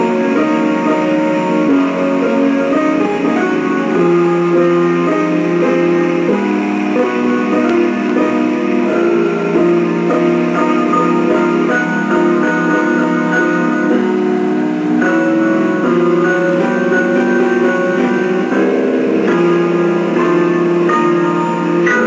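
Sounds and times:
slow grand piano piece: 0.0s - 22.0s.

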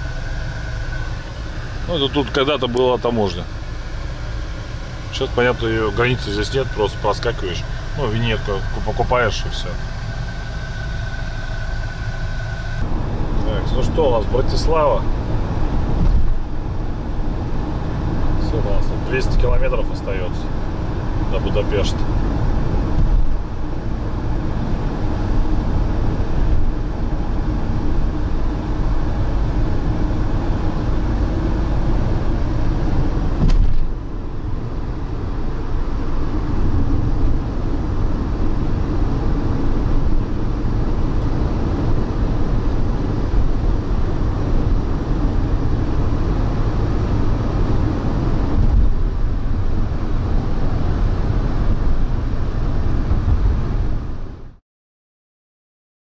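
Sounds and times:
engine and tyre drone in vehicle: 0.0s - 54.6s.

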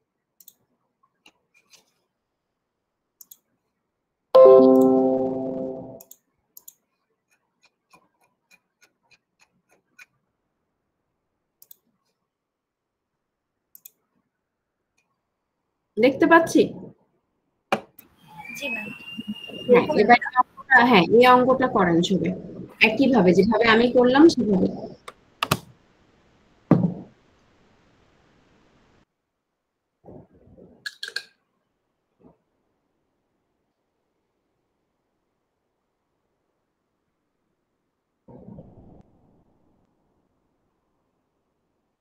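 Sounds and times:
computer mouse clicks: 0.4s - 2.0s, 3.2s - 3.5s, 6.0s - 10.1s, 11.6s - 12.2s, 13.7s - 14.0s, 25.0s - 25.7s.

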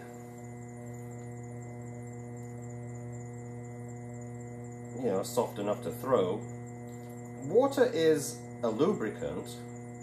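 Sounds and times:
potter's wheel motor hum: 0.0s - 10.0s.

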